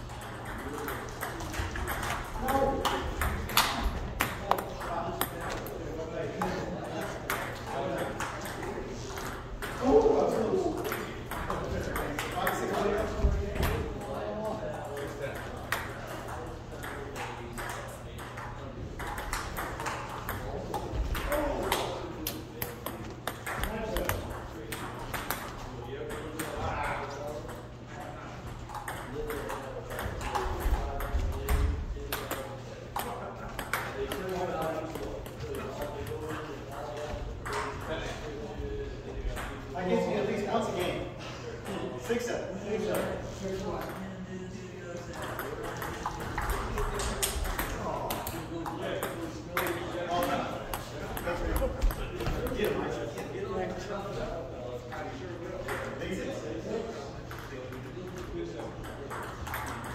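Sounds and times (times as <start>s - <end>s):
ping-pong ball clicking: 0.1s - 5.7s, 15.0s - 25.5s, 28.7s - 32.4s, 45.2s - 51.3s, 58.8s - 59.9s.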